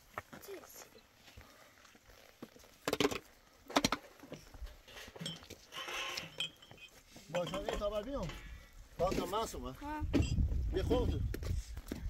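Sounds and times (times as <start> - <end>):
rock scraping rattle: 2.5 - 11.3.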